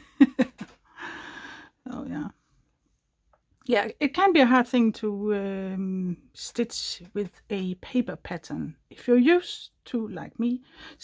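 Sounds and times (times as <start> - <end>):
woman laughing softly: 0.0 - 1.4.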